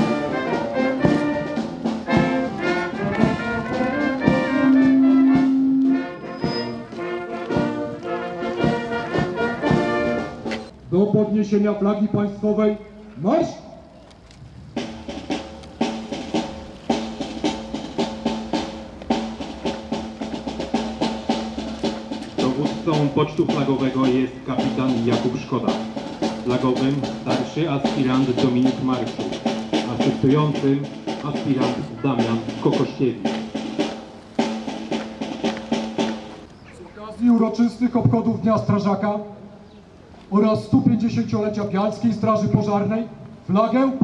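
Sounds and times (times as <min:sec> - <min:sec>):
bass drum: 0:00.0 - 0:06.0, 0:14.8 - 0:36.4
snare drum: 0:00.0 - 0:06.1, 0:08.4 - 0:10.7, 0:14.8 - 0:36.4.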